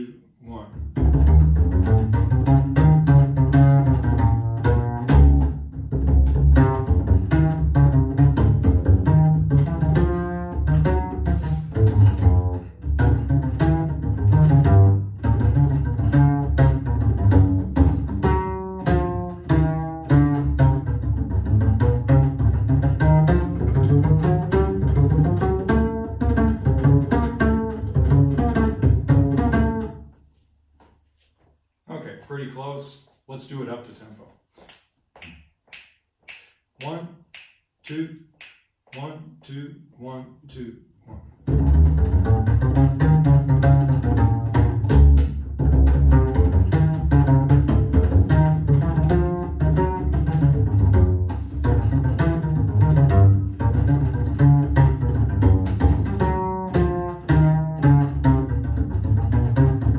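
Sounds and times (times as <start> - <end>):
plucked double bass: 0.7 - 30.2, 41.1 - 59.9.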